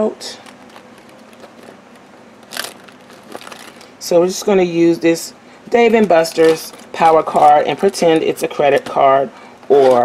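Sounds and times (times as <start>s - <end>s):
pens shifting: 0.4s - 3.9s, 5.9s - 10.0s
plastic pouch rustling: 0.4s - 4.0s, 5.8s - 10.0s.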